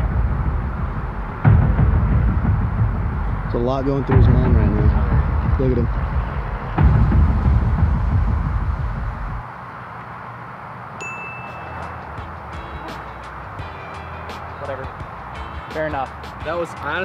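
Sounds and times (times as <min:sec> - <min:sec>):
low rumble: 0:00.0 - 0:09.4.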